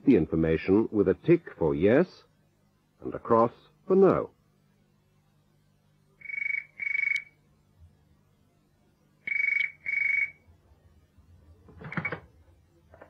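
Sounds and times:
telephone ringing: 0:11.8 - 0:12.3.

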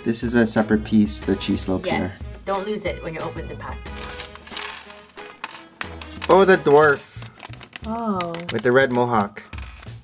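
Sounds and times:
faint background music: 0:00.0 - 0:10.0
foil bag crinkling: 0:03.8 - 0:09.9
plastic pieces clattering on table: 0:03.8 - 0:10.0.

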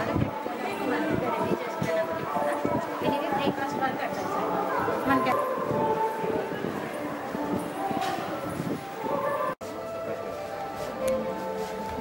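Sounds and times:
people talking: 0:00.0 - 0:10.2.

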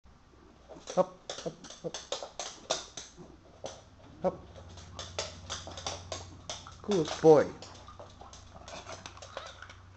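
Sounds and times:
dog claws tapping on wooden floor: 0:00.7 - 0:09.8.

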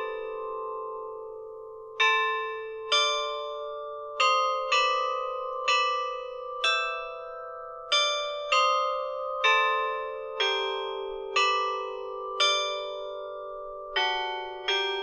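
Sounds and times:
slow melody on tuned bells: 0:00.0 - 0:15.0.

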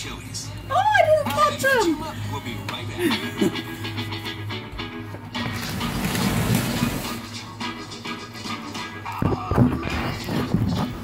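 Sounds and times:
music from television: 0:00.0 - 0:11.0.

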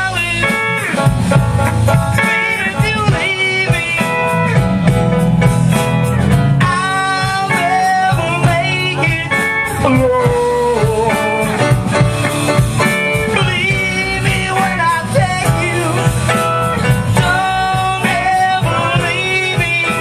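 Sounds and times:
high bending melody line: 0:00.0 - 0:20.0
live rock band playing: 0:00.0 - 0:20.0.

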